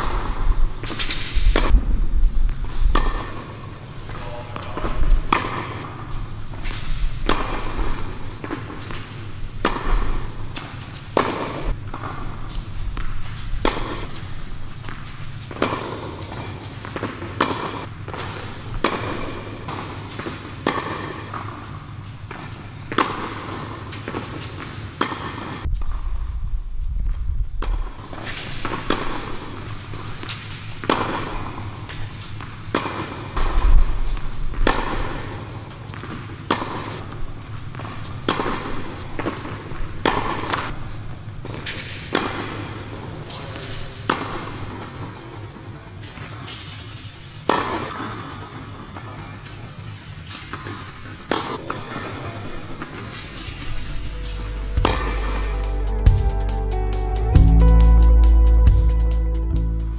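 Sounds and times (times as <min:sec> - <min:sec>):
tennis ball struck and bouncing: 0:00.0 - 0:01.8, 0:02.5 - 0:21.7, 0:22.3 - 0:26.0, 0:27.6 - 0:36.9, 0:37.7 - 0:40.7, 0:47.5 - 0:48.3, 0:52.8 - 0:55.4
steady low hum: 0:52.7 - 0:59.9.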